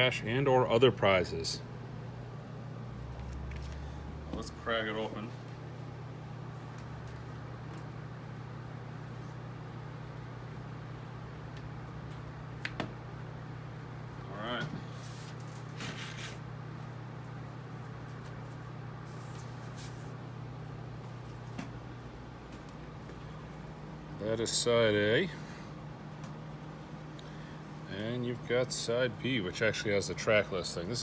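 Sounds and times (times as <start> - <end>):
low room hum: 0.0 - 31.0.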